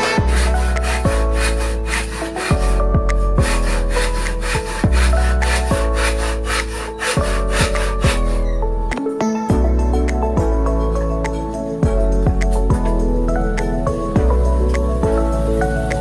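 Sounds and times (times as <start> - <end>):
wood being sawn: 0.0 - 8.7
background music: 0.0 - 16.0.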